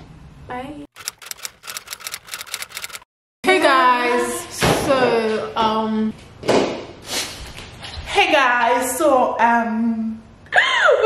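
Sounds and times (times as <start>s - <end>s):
typewriter keystroke clicks: 1.0s - 3.0s.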